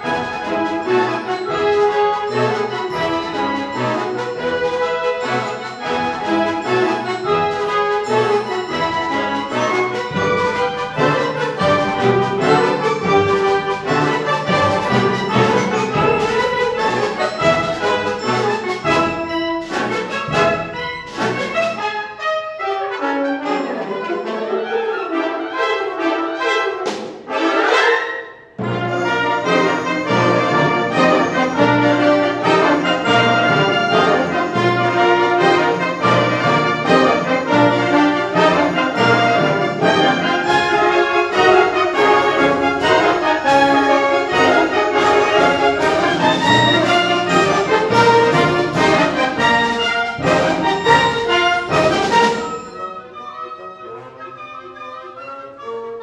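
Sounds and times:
wind band playing: 0.0s - 56.0s
sharp percussive strikes: 28.6s - 53.0s.

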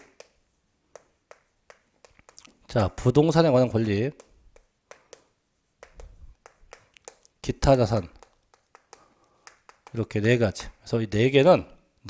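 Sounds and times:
chalk tapping on chalkboard: 0.0s - 3.2s, 3.9s - 10.4s.

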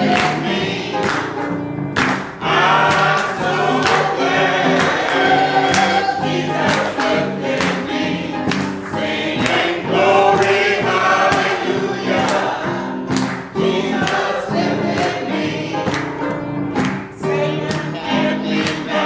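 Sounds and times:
hand claps: 0.0s - 9.8s, 10.4s - 17.9s, 18.5s - 19.0s
choir singing gospel: 0.0s - 19.0s.

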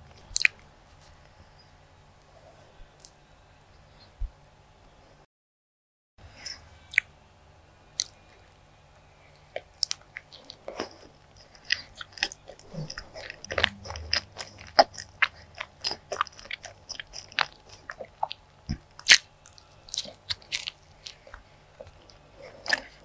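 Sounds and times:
close chewing: 9.3s - 23.0s.

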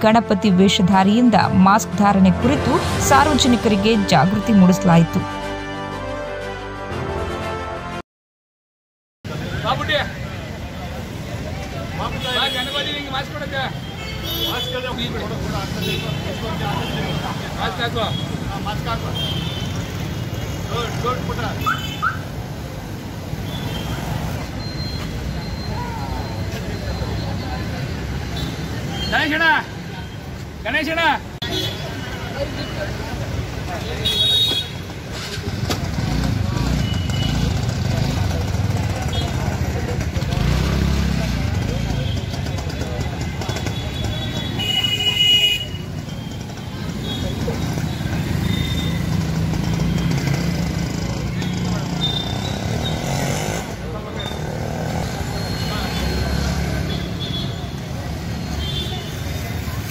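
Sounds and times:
motorbike and vehicle engines: 0.0s - 5.4s, 9.3s - 59.9s
traffic rumble: 9.3s - 59.9s
loud car horn toot: 34.0s - 34.9s, 43.5s - 46.0s
people's voices: 35.0s - 59.9s.

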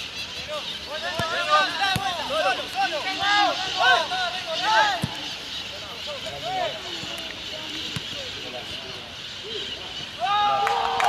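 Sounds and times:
footballers shouting: 0.8s - 8.0s, 9.5s - 11.0s.

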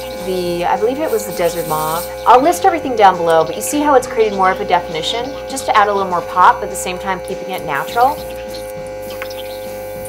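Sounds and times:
droning background music: 0.0s - 10.0s.

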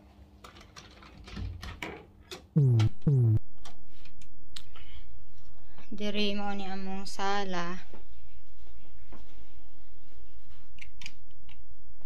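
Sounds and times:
steady low hum: 2.6s - 7.0s.

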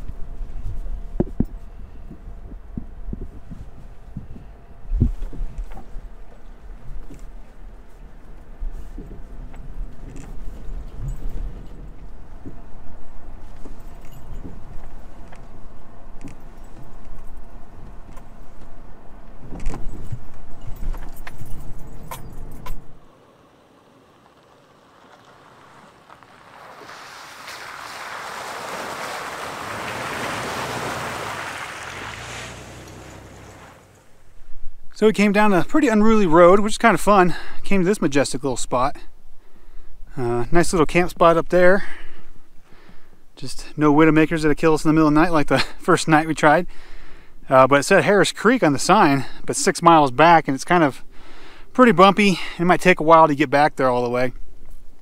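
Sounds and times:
rushing hiss: 26.5s - 33.9s
car cabin rumble: 30.6s - 34.5s.

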